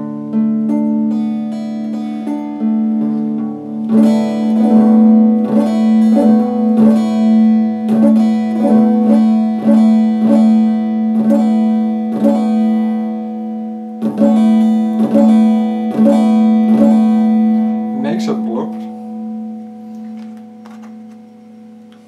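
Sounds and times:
electric guitar single notes: 0.0s - 22.0s.

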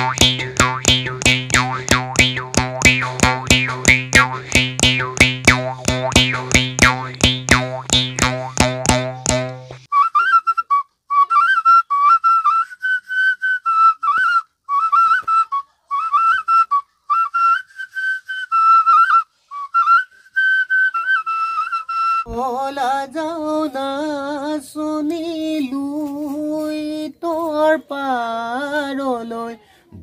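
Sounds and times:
jaw harp twanging: 0.0s - 9.9s
small clay whistle playing tune: 0.0s - 22.3s.

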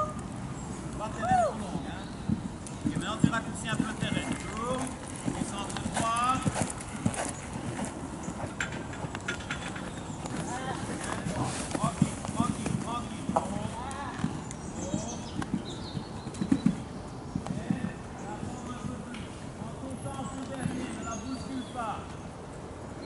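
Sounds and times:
horse hoofbeats on sand: 1.2s - 19.1s, 19.8s - 21.5s.

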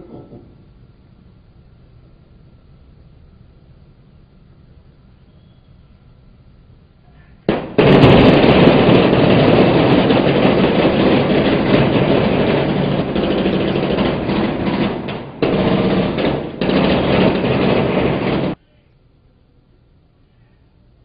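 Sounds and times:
rapid automatic gunfire: 7.5s - 18.6s.

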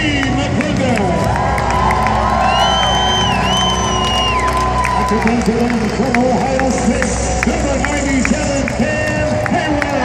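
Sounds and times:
music over public address: 0.0s - 10.0s
stadium crowd cheering: 0.0s - 10.0s.

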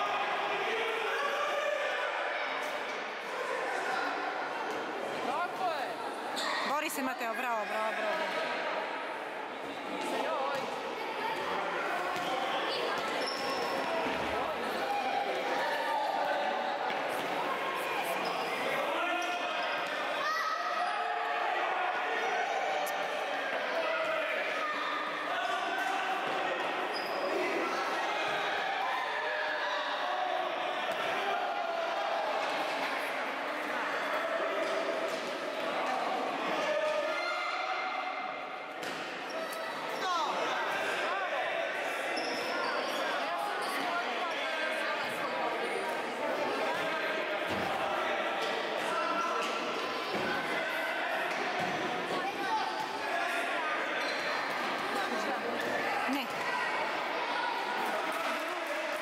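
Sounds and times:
shouts and chatter: 0.0s - 59.0s
shoe squeaks on court floor: 13.0s - 13.9s, 26.9s - 27.4s.

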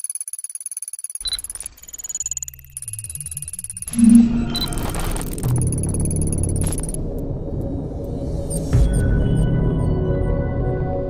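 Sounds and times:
high steady electronic tones: 0.0s - 7.1s
ticking electronic pulses: 0.0s - 7.8s
low electronic hum: 3.2s - 9.3s.

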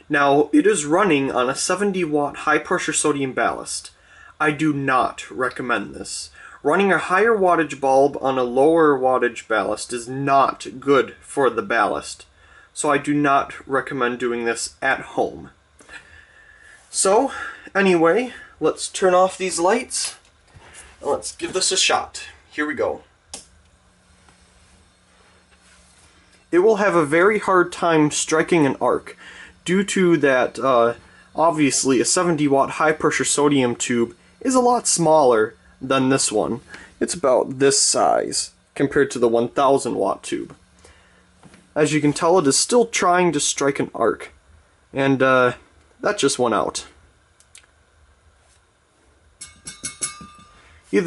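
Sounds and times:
faint high buzz: 0.0s - 51.0s
faint steady ballast hum: 0.0s - 51.0s.

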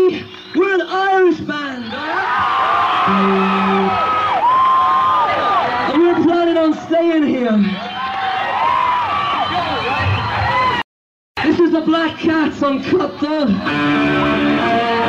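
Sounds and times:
crowd noise and whoops: 1.5s - 6.8s, 7.5s - 10.8s.

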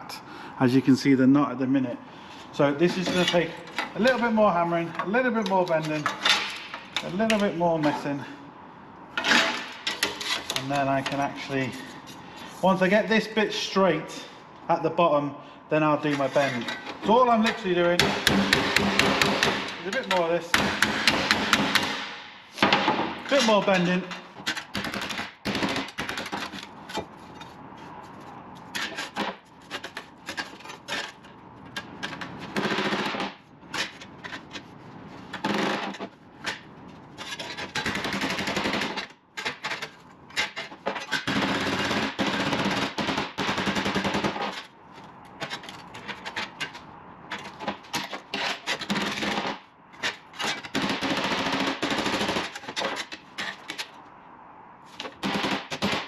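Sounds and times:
metal scraping: 2.6s - 8.2s, 9.1s - 13.0s, 16.0s - 21.9s
sheet steel being hammered: 18.0s - 23.2s.

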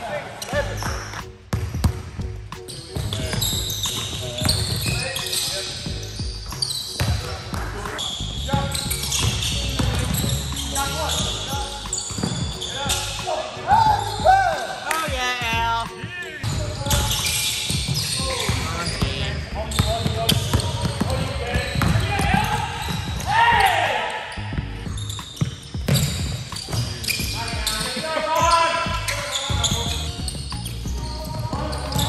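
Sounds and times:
players' voices: 0.0s - 1.4s, 2.7s - 25.1s, 26.0s - 32.0s
sneakers squeaking: 0.2s - 32.0s
basketball bouncing on hardwood floor: 16.4s - 23.3s, 25.4s - 27.4s.

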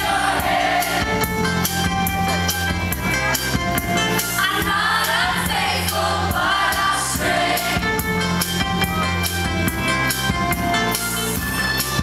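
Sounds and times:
pop band playing: 0.0s - 12.0s.

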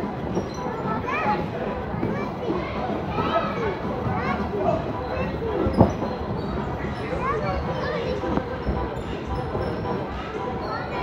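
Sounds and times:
babble of many kids: 0.0s - 11.0s
children calling and shrieking: 0.3s - 11.0s.

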